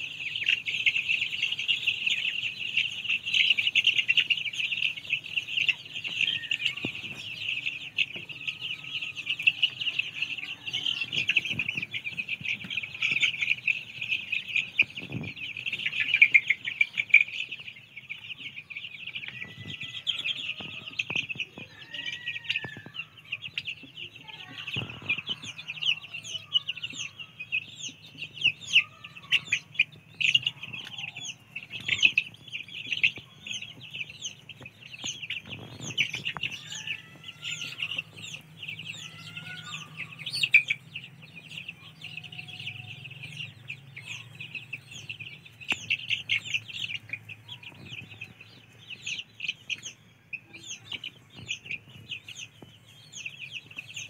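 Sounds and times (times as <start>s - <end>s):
chicks peeping: 0.0s - 54.0s.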